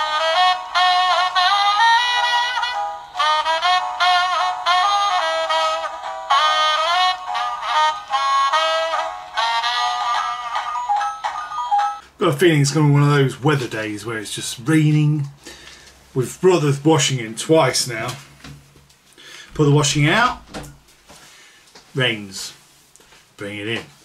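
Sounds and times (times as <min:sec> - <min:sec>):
toy playing tinny saxophone tune: 0:00.0 - 0:12.0.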